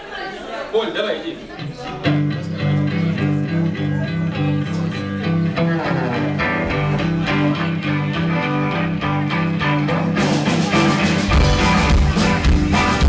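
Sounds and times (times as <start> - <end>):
live band with electric guitars: 1.6 - 13.0.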